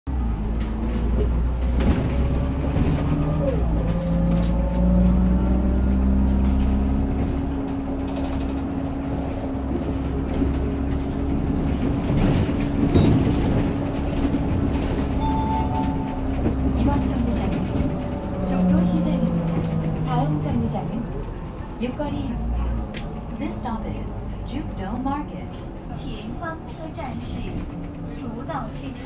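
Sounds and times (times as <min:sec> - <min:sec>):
bus engine drone: 0:00.1 - 0:29.0
road rumble: 0:00.1 - 0:29.0.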